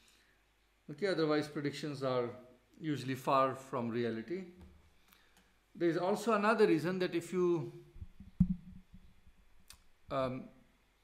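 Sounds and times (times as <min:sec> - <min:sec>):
dull low thump: 0:08.0 - 0:09.1.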